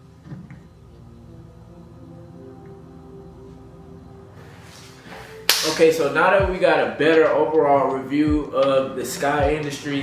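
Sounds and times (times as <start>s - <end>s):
soft background music: 0.0s - 10.0s
hand clap: 5.4s - 6.0s.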